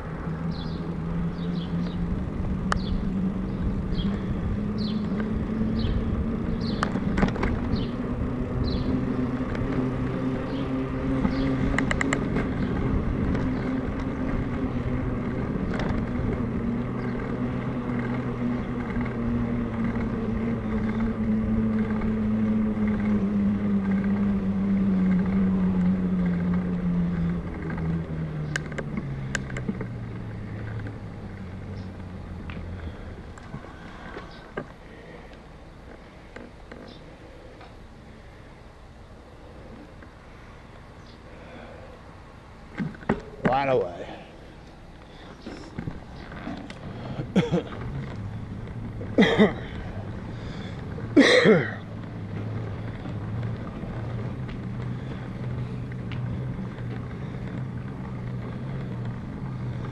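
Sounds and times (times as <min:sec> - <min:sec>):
bicycle tyres humming on asphalt: 0:00.0 - 0:59.9
birds chirping: 0:00.0 - 0:59.9.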